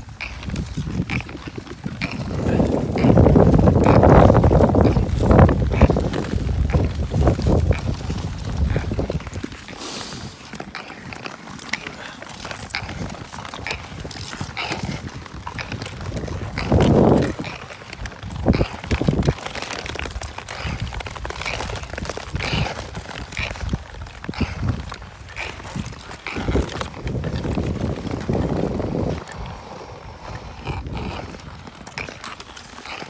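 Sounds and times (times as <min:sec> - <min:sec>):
skate blades scraping on ice: 0:00.0 - 0:33.0.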